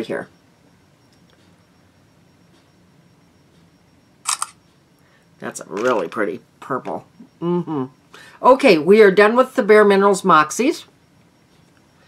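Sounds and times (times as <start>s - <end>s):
camera shutter double click: 4.3s - 4.6s.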